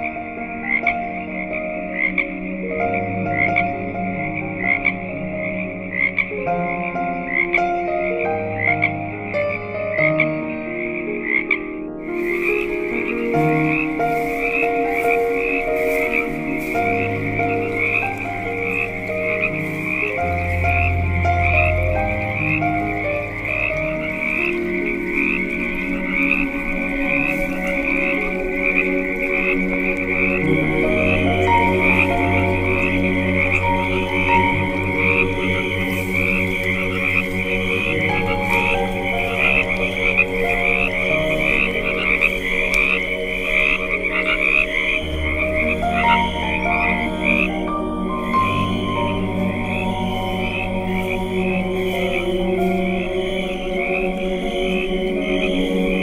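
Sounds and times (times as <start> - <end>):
crickets chirping: 0.0 - 56.0
frogs trilling: 0.0 - 56.0
slow ambient music: 0.0 - 56.0.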